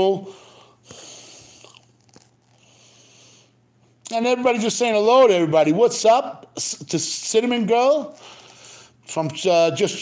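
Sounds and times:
low steady hum and hiss: 0.0 - 10.0.

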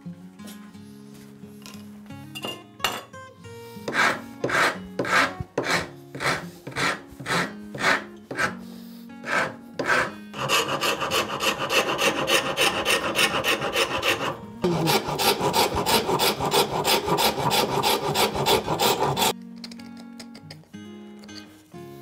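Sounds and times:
rasp scraping wood: 3.8 - 19.4.

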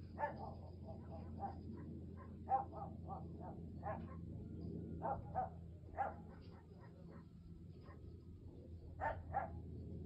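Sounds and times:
dog barking: 0.2 - 4.3, 5.0 - 8.0, 9.0 - 9.6.

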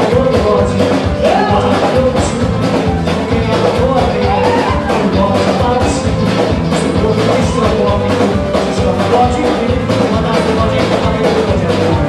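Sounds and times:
drum kit: 0.0 - 12.0
electric bass: 0.0 - 12.0
guitar: 0.0 - 12.0
hand drums: 0.0 - 12.0.

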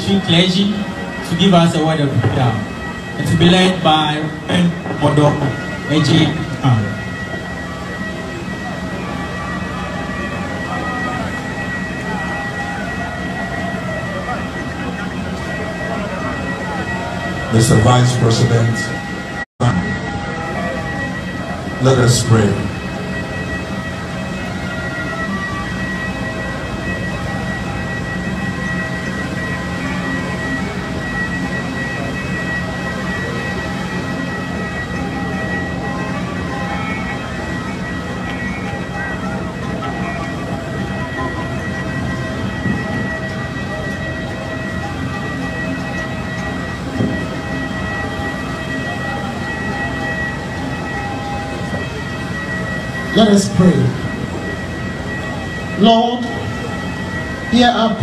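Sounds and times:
machine drone with high-pitched whine: 0.0 - 58.0.

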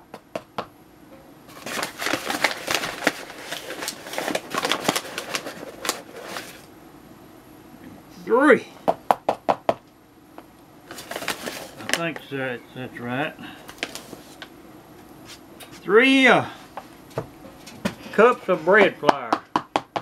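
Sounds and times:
paper bag rustling: 1.5 - 6.7, 10.9 - 12.2, 13.6 - 14.5.

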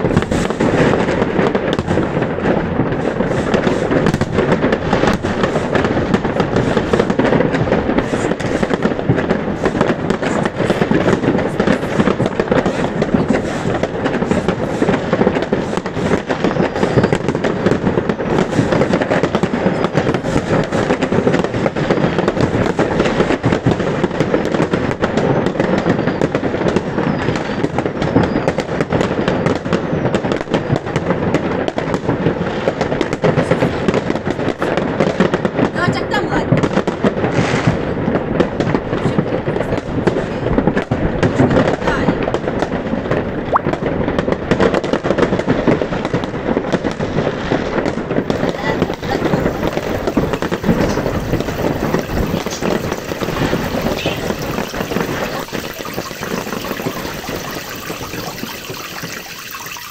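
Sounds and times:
fireworks crackling and banging: 0.0 - 59.9.

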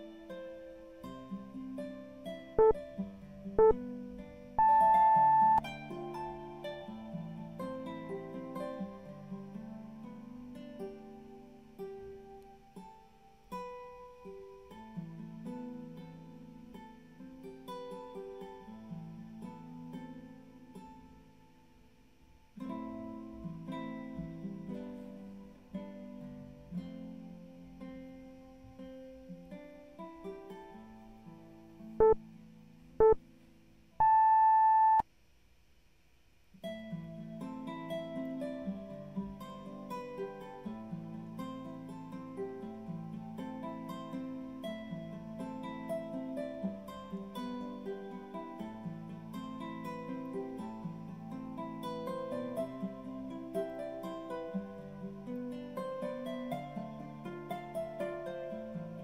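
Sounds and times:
acoustic guitar music: 0.0 - 35.0, 36.6 - 59.0
timer countdown beeps: 4.6 - 5.6, 34.0 - 35.0.

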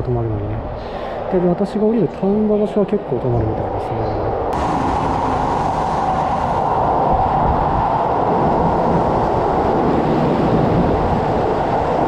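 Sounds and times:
train wheel and motor noise: 4.4 - 12.0.

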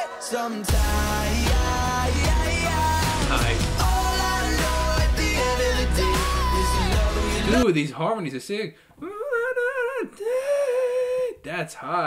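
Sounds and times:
man singing high held notes: 1.1 - 7.6.

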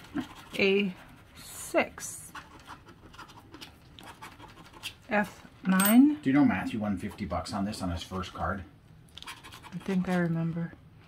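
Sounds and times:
scratching lottery ticket: 0.0 - 5.3, 9.2 - 10.6.

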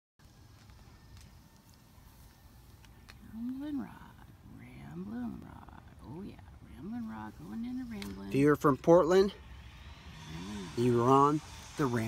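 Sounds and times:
man making wordless vocal calls: 10.3 - 11.2.

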